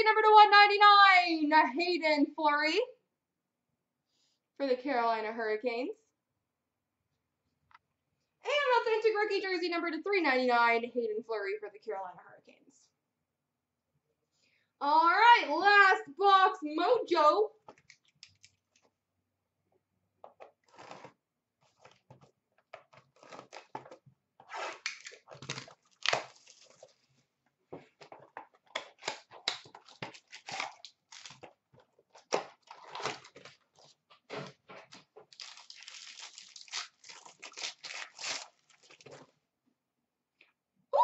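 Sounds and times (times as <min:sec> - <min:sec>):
packaging tearing and crinkling: 0:22.9 - 0:23.9, 0:24.7 - 0:27.1, 0:28.7 - 0:39.3.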